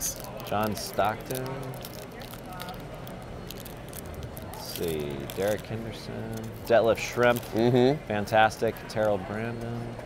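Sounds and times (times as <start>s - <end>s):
murmur of convention crowd: 0.0s - 10.0s.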